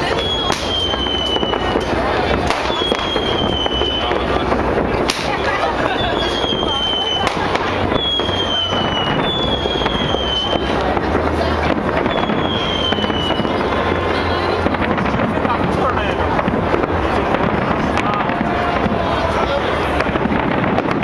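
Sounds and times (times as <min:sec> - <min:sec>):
fireworks crackling and banging: 0:00.0 - 0:21.0
whistling rockets: 0:00.0 - 0:21.0.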